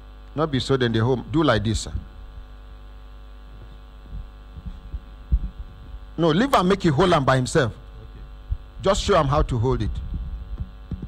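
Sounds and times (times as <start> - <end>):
electrical mains hum: 0.0 - 11.0
microphone handling thumps: 3.5 - 6.2, 8.1 - 8.8, 9.9 - 11.0.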